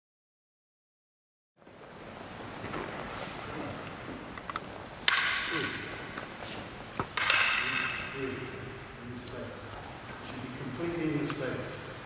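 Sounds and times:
wooden swords clacking: 3.8 - 8.6.

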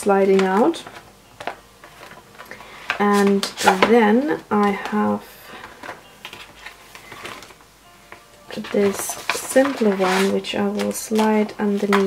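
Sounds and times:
plastic sheet handled: 0.0 - 7.6, 8.5 - 12.0
paper pages rustling: 0.2 - 7.6, 8.5 - 12.0.

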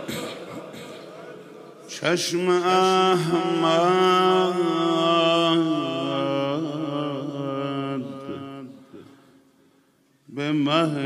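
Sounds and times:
man chanting into a microphone: 1.8 - 9.2, 10.3 - 11.0.

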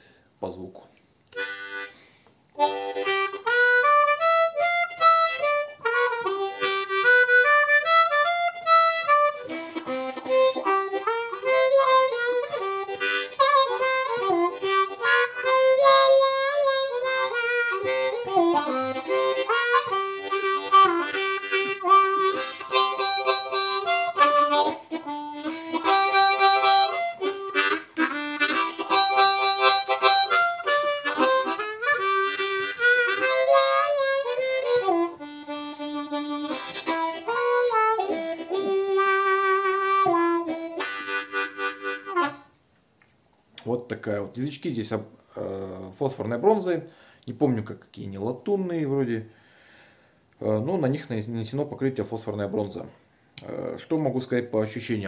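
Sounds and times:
harmonica melody with bending notes: 1.3 - 42.8.

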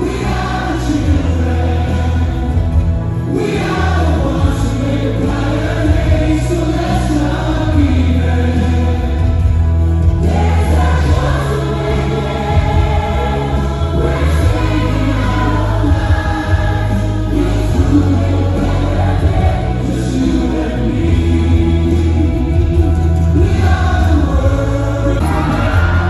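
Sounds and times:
adults and children singing: 0.0 - 26.0
music with heavy bass: 0.0 - 26.0.

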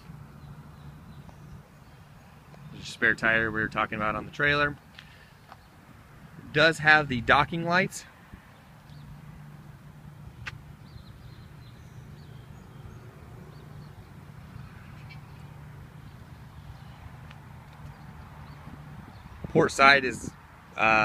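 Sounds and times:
faint outdoor background noise: 0.0 - 21.0.

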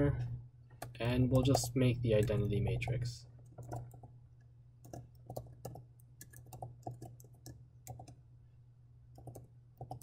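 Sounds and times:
low steady hum: 0.0 - 10.0
keyboard typing: 3.4 - 4.1, 4.8 - 8.2, 9.1 - 10.0.

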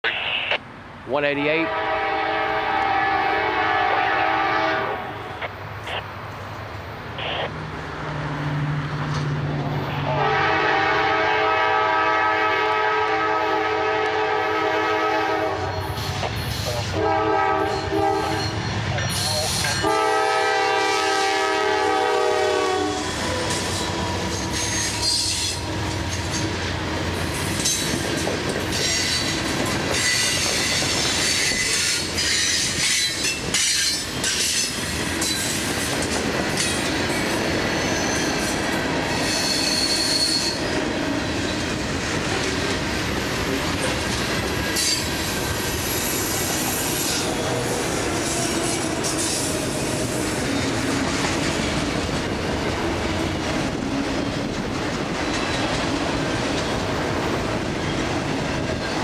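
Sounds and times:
train horn blasts: 1.6 - 5.5, 10.0 - 16.0, 16.8 - 18.6, 19.7 - 25.8, 46.8 - 49.4
high wheel squeals: 23.0 - 26.5, 37.7 - 40.7
train wheels clattering over rail joints: 23.4 - 37.3, 50.6 - 57.0.

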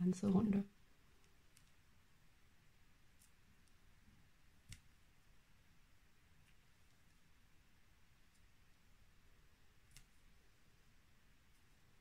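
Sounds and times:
crochet hook clicking: 1.2 - 1.8, 4.6 - 5.0, 9.8 - 10.2.

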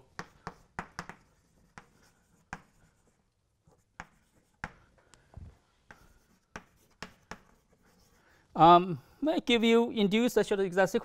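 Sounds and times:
chalk writing on chalkboard: 0.0 - 5.0, 5.8 - 8.5.

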